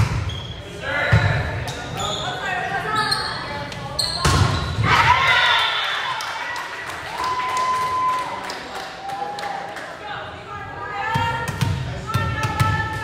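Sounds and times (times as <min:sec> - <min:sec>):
girls shouting and cheering: 0:04.8 - 0:08.2.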